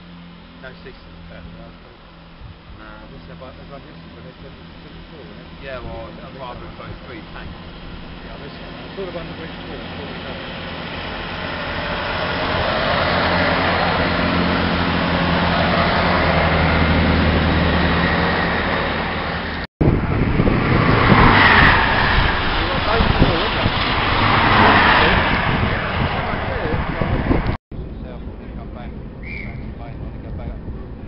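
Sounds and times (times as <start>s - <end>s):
diesel train passing: 0.0s - 31.0s
rough loud noise: 0.0s - 31.0s.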